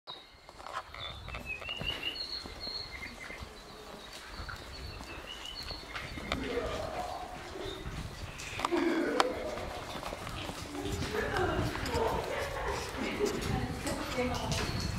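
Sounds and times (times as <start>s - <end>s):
footsteps on walkway: 0.1s - 14.9s
small birds chirping: 0.1s - 14.9s
people talking indistinctly: 8.6s - 14.9s.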